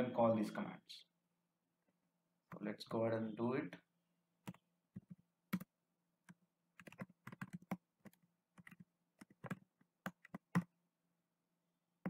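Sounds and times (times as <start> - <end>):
typing on computer keyboard: 6.3 - 10.7.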